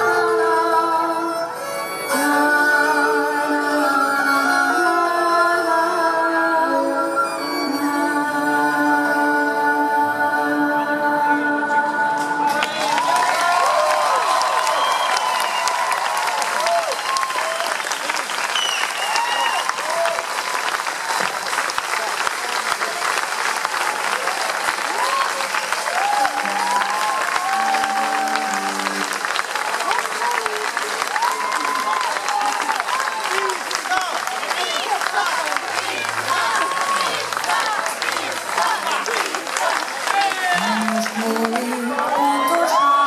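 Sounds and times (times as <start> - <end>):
audience clapping: 12.2 - 42.9
audience cheering and whooping: 12.4 - 21.7, 23.5 - 43.0.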